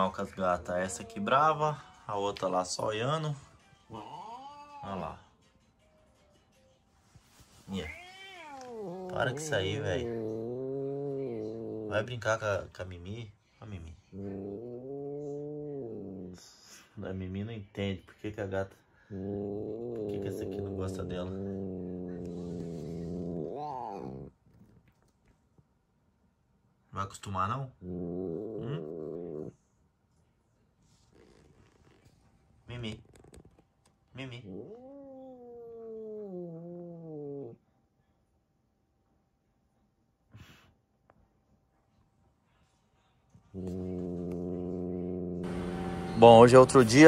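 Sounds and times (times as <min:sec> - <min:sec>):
cat yowling: 0:04.0 - 0:05.0, 0:07.8 - 0:12.0, 0:34.5 - 0:37.6
cat growling: 0:04.0 - 0:05.2, 0:07.7 - 0:12.8, 0:13.9 - 0:16.8, 0:19.0 - 0:25.1, 0:27.6 - 0:29.7, 0:34.2 - 0:37.6, 0:43.4 - 0:47.0
cat hissing: 0:07.6 - 0:12.1, 0:14.1 - 0:16.8, 0:19.1 - 0:24.7, 0:27.8 - 0:29.6, 0:34.4 - 0:37.6, 0:40.3 - 0:40.8, 0:43.5 - 0:46.1.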